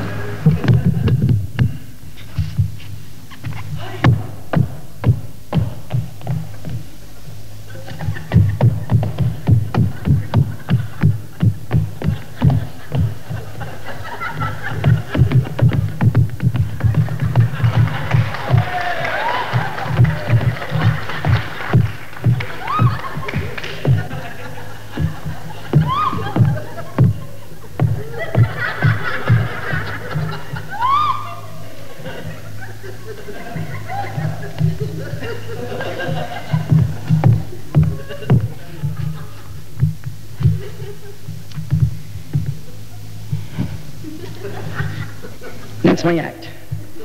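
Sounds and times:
audience voices: 0.0 - 1.2, 6.5 - 39.4.

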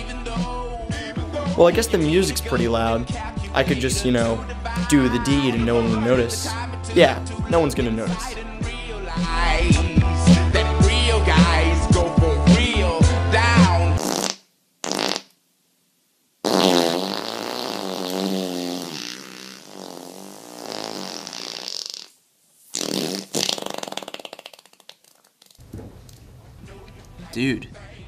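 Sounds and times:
fart: 14.0 - 15.3, 16.4 - 25.6.

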